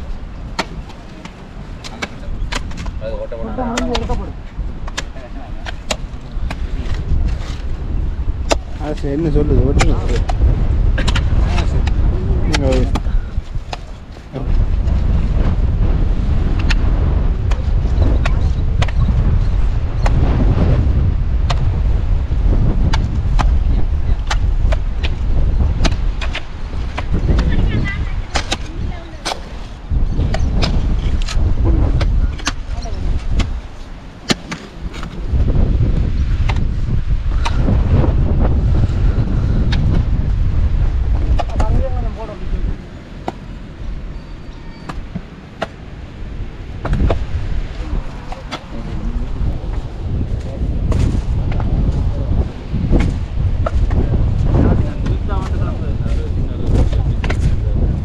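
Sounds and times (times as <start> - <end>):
wind buffeting microphone: 0.0 - 58.0
hoe blades chopping soil: 8.4 - 9.0, 9.8 - 13.1, 22.9 - 31.4, 32.0 - 35.2, 41.2 - 41.8.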